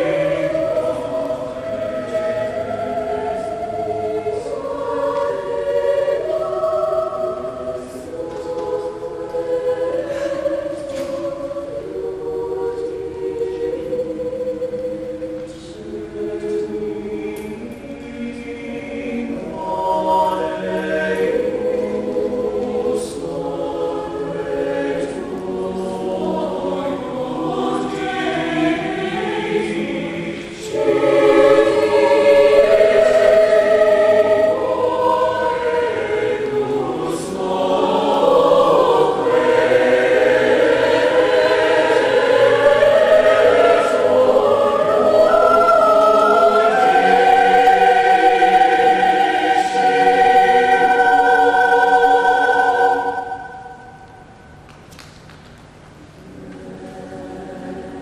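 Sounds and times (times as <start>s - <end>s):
large choir singing: 0.0s - 54.7s, 56.2s - 58.0s.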